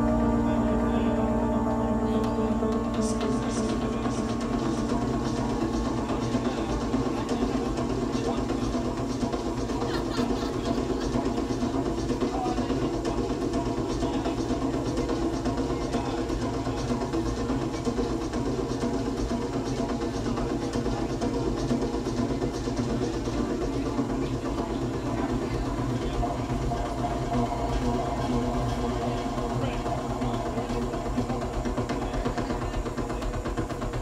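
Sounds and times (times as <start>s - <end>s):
synthesizer drone music: 0.0s - 34.0s.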